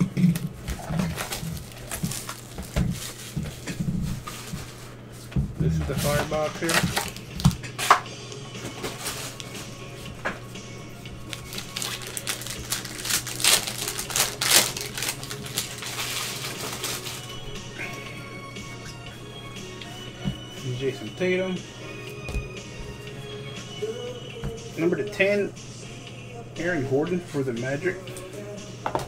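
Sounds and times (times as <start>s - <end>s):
background music: 0.0s - 29.0s
foil wrapper crinkling: 0.6s - 4.9s, 6.0s - 7.6s, 8.8s - 9.6s, 11.2s - 17.4s.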